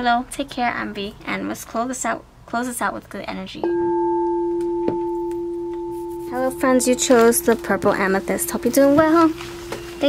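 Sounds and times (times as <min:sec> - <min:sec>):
singing bowl ringing: 0:03.6 - 0:10.0.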